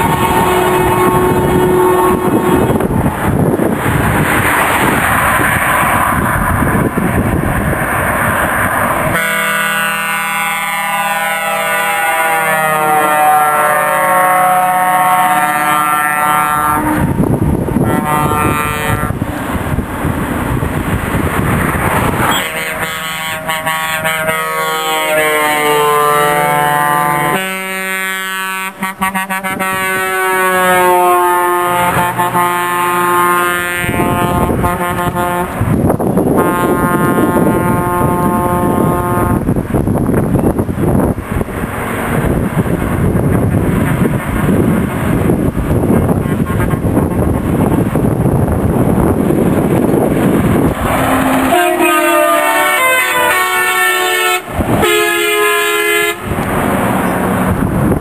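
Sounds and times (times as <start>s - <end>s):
truck air horns blasting: 0.0s - 3.0s, 9.1s - 17.2s, 17.8s - 19.3s, 22.2s - 39.5s, 50.5s - 56.5s
truck engine and tyre rush: 0.0s - 58.0s.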